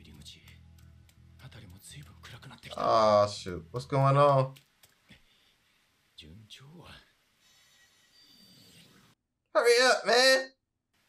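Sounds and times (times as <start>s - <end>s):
faint steady hiss: 0.0s - 9.2s.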